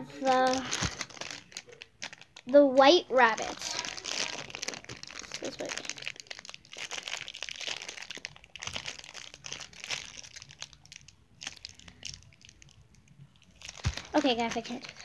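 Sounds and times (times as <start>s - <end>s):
plastic wrapping crinkling: 0.0s - 15.0s.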